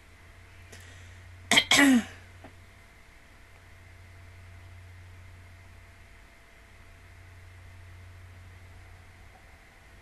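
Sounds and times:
woman clearing her throat: 1.5s - 2.2s.

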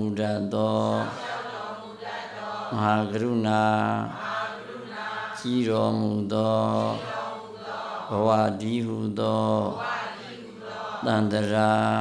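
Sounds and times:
monk chanting in monotone: 0.0s - 12.0s.

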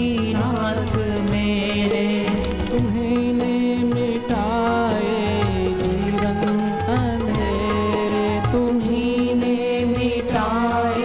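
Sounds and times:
instrumental accompaniment: 0.0s - 11.0s
man singing: 0.0s - 11.0s.

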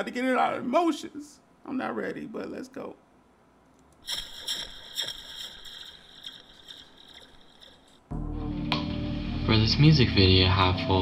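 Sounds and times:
hissing sound effect: 4.0s - 8.0s.

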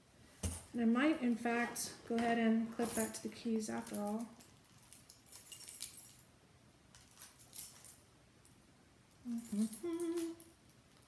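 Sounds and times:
keys clinking and jingling: 2.8s - 6.3s, 6.9s - 11.0s.

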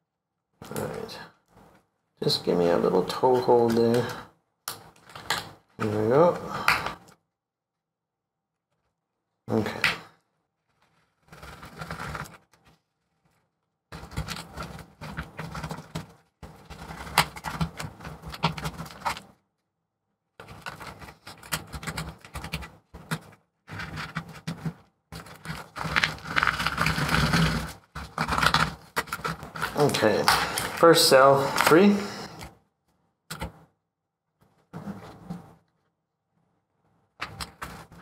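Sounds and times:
plastic pry tool scraping: 11.2s - 12.5s, 13.9s - 19.4s, 20.4s - 32.5s.

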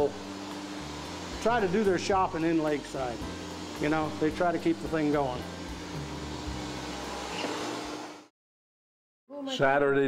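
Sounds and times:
electric hair clipper humming: 0.0s - 8.3s.

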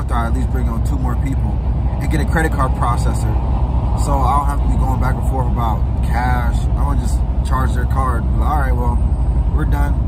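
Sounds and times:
man talking: 0.0s - 3.4s, 4.0s - 10.0s
car rumbling on road: 0.0s - 10.0s.

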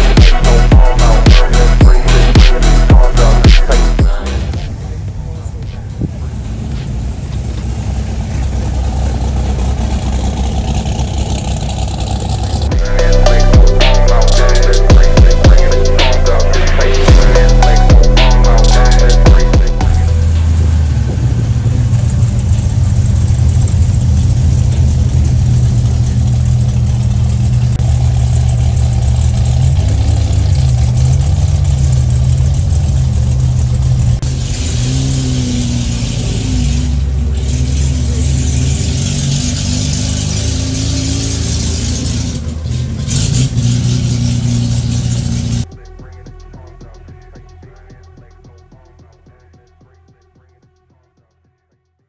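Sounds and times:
rush of noise: 0.0s - 25.9s
car engine revving: 0.0s - 49.9s.

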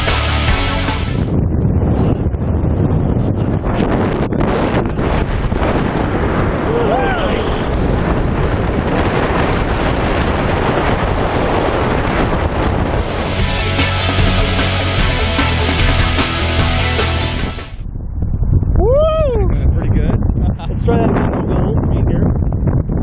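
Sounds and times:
wind buffeting microphone: 0.0s - 23.0s
person shouting: 6.7s - 7.7s, 18.8s - 19.5s.

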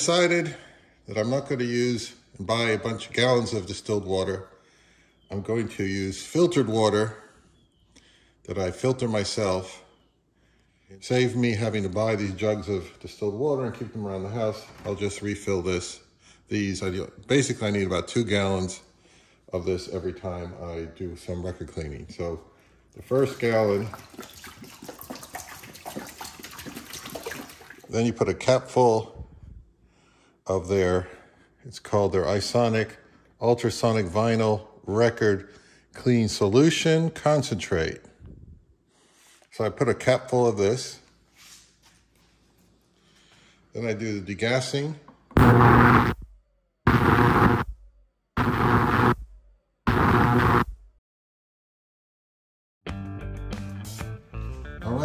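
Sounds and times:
water pouring into metal tank: 23.0s - 28.0s
ultrasonic cleaner buzzing bursts: 45.4s - 46.2s, 46.9s - 47.6s, 48.4s - 49.2s, 49.9s - 50.6s.

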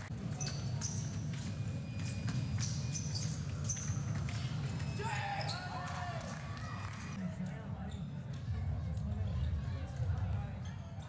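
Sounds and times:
gliding shoe squeaks: 0.2s - 6.0s.

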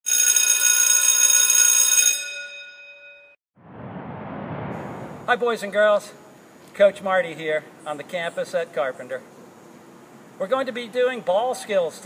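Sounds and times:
bell-like ringing chime: 2.0s - 3.4s
background hiss: 5.0s - 11.1s.

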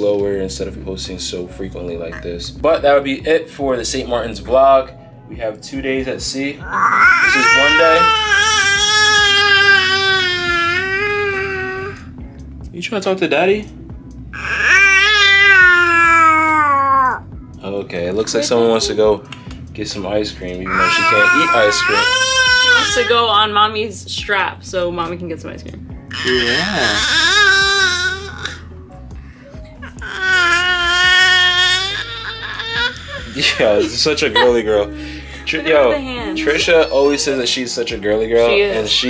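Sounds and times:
baby long vocal call: 6.6s - 12.1s, 14.4s - 17.2s, 26.1s - 28.7s, 29.6s - 33.4s.

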